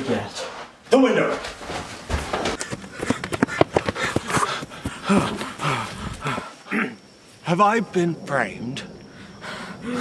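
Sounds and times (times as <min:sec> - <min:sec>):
man grunting and gasping: 0:04.0 - 0:07.0.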